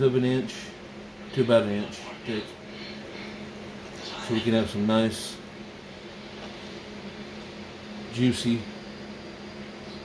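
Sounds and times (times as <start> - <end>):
low hum with soft hiss: 0.0 - 10.0.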